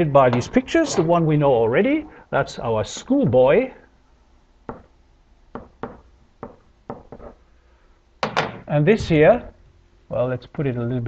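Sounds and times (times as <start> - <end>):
pen tapping on whiteboard: 4.7 - 4.9, 5.6 - 7.4.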